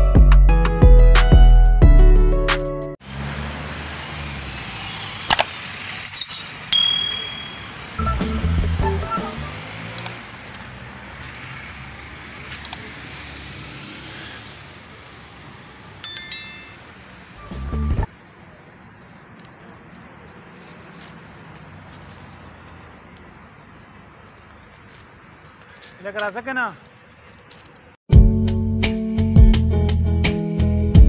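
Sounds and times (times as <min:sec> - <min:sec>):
car passing close by: 0:03.0 - 0:06.0, 0:09.3 - 0:16.0
road traffic hiss: 0:03.0 - 0:28.0
short chirps: 0:06.3 - 0:07.8
chime-like jingle: 0:06.8 - 0:07.8, 0:16.0 - 0:17.1.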